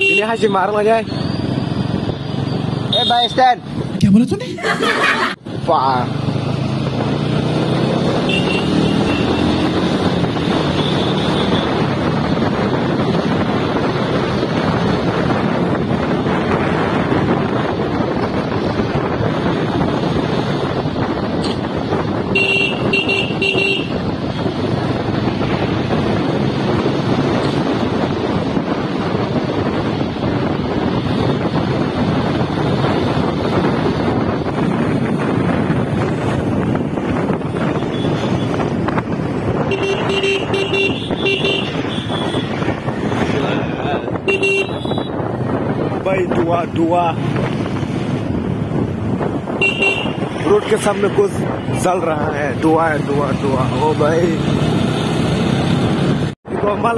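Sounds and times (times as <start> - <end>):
wind rushing on microphone: 0.0 - 56.9
vehicle horn short toots: 22.4 - 24.0, 39.7 - 42.4, 44.2 - 45.2, 49.6 - 50.3.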